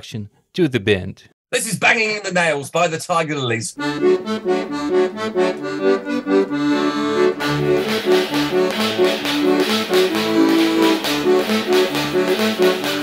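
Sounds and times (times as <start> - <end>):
accordion bouncy melody: 3.8 - 13.0.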